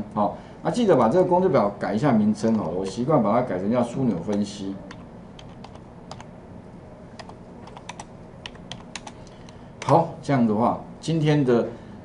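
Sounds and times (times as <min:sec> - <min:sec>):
computer keyboard typing: 0:04.2 - 0:06.3, 0:07.2 - 0:09.2.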